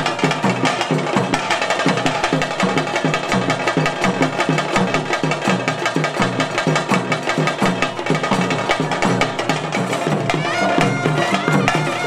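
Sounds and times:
clatter of higher percussion: 0.0s - 12.0s
drums beaten in fast rhythm: 0.0s - 12.0s.

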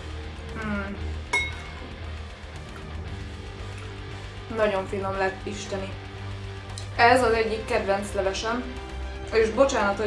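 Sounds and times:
quiet background music: 0.0s - 10.0s
metal spoon clinking on dish: 1.4s - 1.8s.

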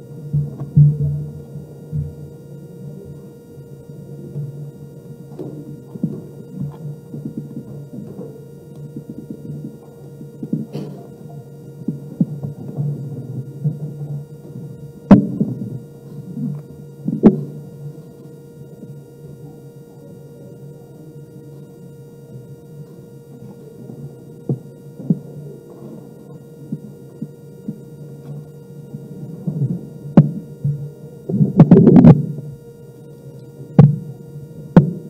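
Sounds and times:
faint murmur: 0.0s - 35.0s
faint steady hum: 0.0s - 35.0s.

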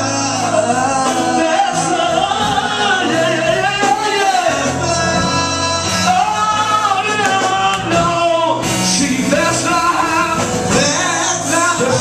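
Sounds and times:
band accompaniment: 0.0s - 12.0s
person singing long line: 0.0s - 12.0s.

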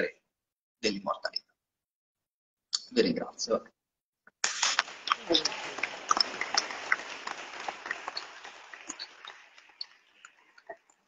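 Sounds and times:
audience applause: 4.8s - 10.9s.

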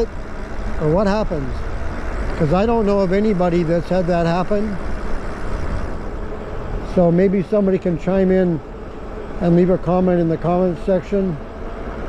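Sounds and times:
wind rushing over microphone: 0.0s - 7.1s
road noise rumble: 0.0s - 12.0s.

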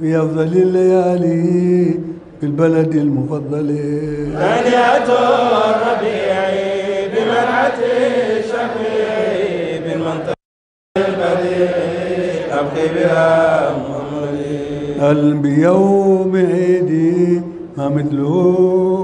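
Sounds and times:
men chanting melodically: 3.6s - 10.4s, 11.0s - 19.0s.

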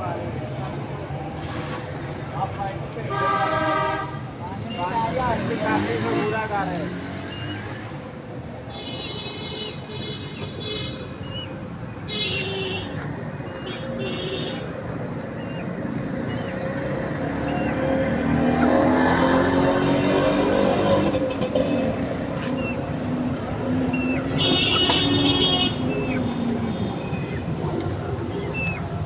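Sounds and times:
passing vehicle engines: 0.0s - 29.0s.

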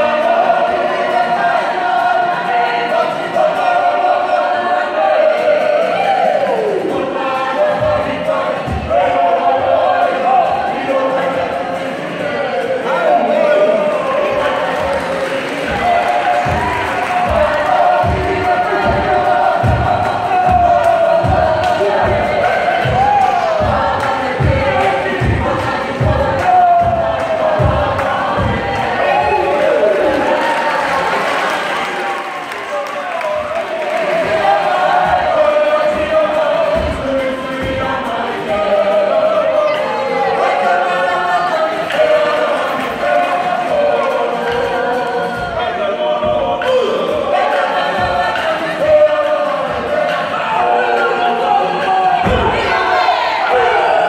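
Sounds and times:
group of voices singing: 0.0s - 54.0s.

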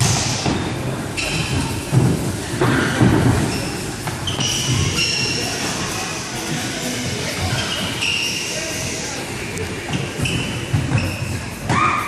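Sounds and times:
players' voices: 2.3s - 11.8s.

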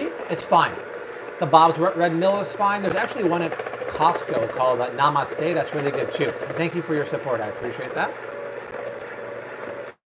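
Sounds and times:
electric hand mixer whirring: 0.0s - 10.0s.

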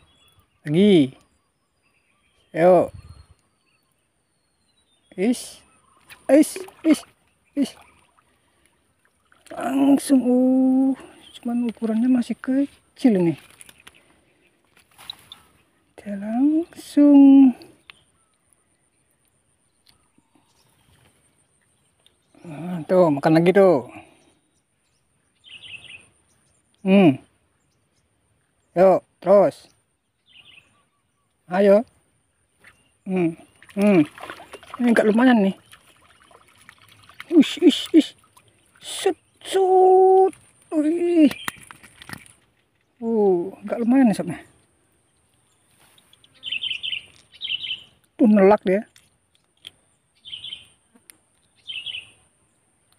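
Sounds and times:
small bird chirping: 0.0s - 52.9s
faint clicks: 17.6s - 20.3s, 48.9s - 49.9s.

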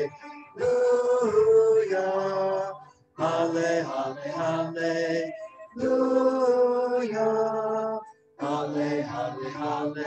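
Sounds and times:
man singing a chant: 0.0s - 10.0s.

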